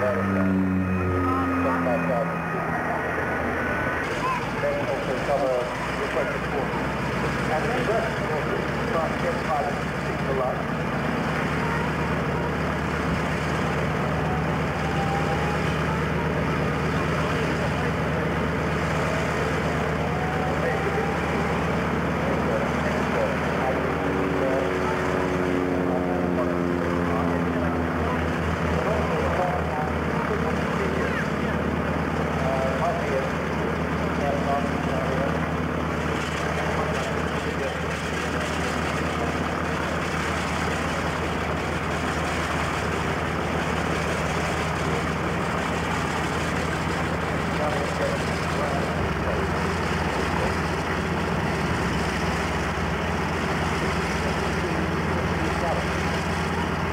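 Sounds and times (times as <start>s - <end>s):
radial aircraft engines idling: 0.0s - 56.9s.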